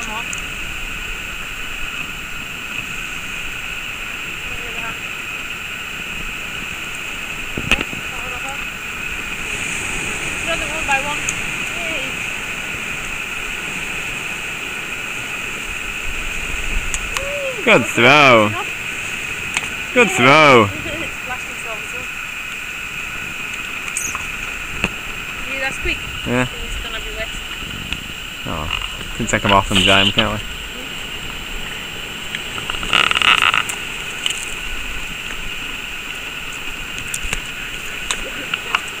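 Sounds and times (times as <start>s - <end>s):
sea waves on rocky shore: 0.0s - 39.0s
seashore hiss: 0.0s - 39.0s
wind buffeting microphone: 0.0s - 39.0s.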